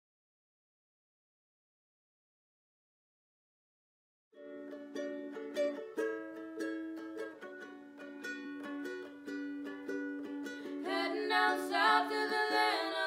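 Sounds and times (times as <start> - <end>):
ukulele strumming chords: 4.4 - 13.0.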